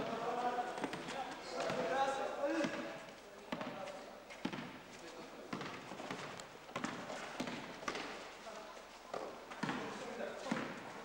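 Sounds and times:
basketball bouncing on floor: 0:03.5 - 0:03.8, 0:04.4 - 0:04.8, 0:05.5 - 0:08.1, 0:09.5 - 0:09.9, 0:10.5 - 0:10.8.

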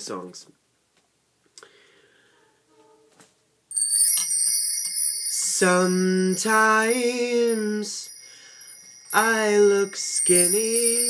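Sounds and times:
chimes ringing: 0:03.7 - 0:11.0.

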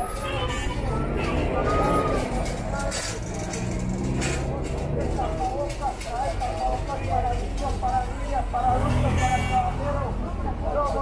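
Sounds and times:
bus pulling away: 0:00.0 - 0:05.7
bus engines humming: 0:00.0 - 0:11.0
people talking: 0:00.0 - 0:11.0.

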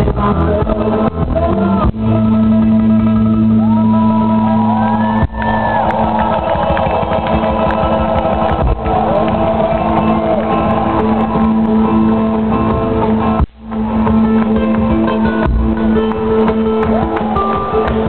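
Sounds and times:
crowd shouting and singing along: 0:00.5 - 0:18.0.

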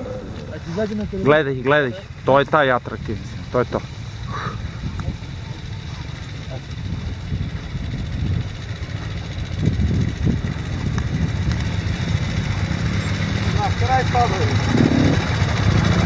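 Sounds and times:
motorcycle engines approaching: 0:00.0 - 0:16.0.

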